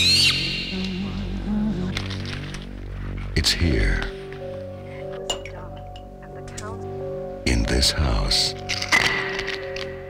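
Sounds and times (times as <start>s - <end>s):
low sustained drone: 0.0s - 8.7s.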